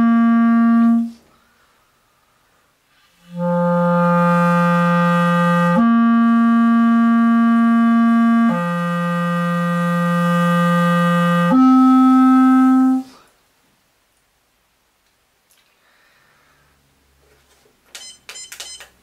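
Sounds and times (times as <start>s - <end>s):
clarinet sustained notes: 0.0s - 1.2s, 3.2s - 13.2s.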